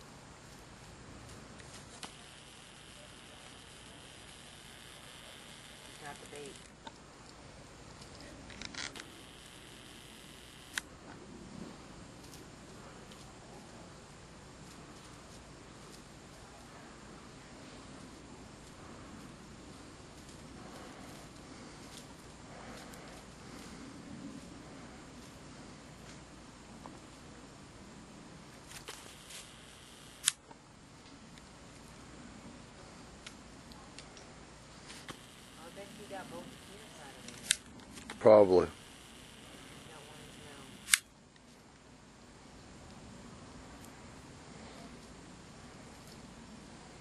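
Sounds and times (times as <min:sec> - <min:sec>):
camcorder zoom motor whirring: 0:01.9 - 0:06.8, 0:08.6 - 0:10.9, 0:28.8 - 0:30.4, 0:35.0 - 0:37.6, 0:38.3 - 0:41.0
sharp click: 0:28.7 - 0:30.4, 0:40.8 - 0:41.1.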